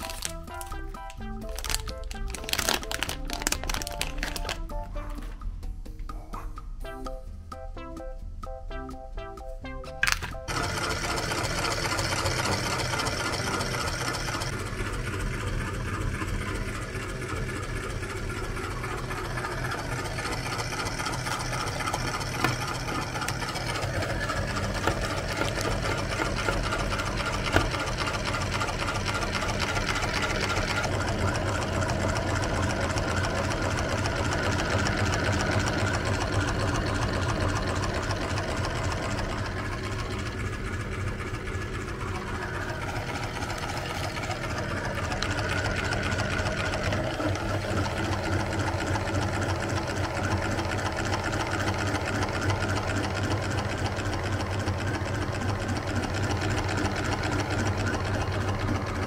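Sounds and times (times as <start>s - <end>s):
electric meat grinder running: 0.0s - 0.6s, 1.5s - 4.6s, 10.0s - 59.0s.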